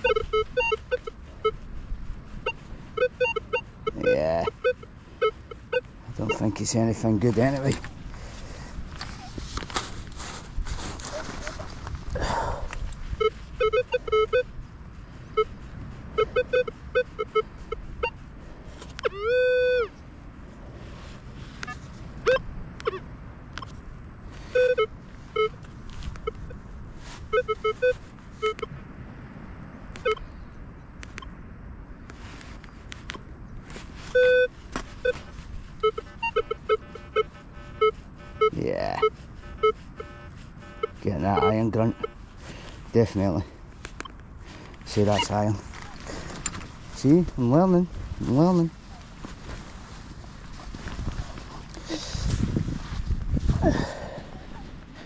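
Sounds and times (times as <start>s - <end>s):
metal detector low beeps: 0.0s - 1.7s, 2.3s - 7.9s, 12.2s - 14.5s, 15.3s - 18.2s, 18.9s - 20.0s, 21.6s - 23.8s, 24.5s - 26.6s, 27.2s - 28.8s, 30.0s - 30.5s, 34.1s - 42.2s, 44.8s - 48.7s.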